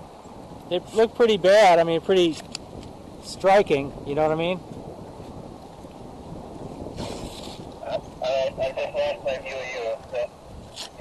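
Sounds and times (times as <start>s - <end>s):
wind on microphone: 0.0s - 11.0s
cloth rubbing on camera: 6.9s - 8.0s
person talking: 7.8s - 10.3s.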